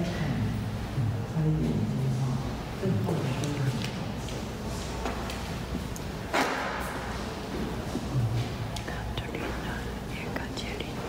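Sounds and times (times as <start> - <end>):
person whispering: 8.2 - 11.0.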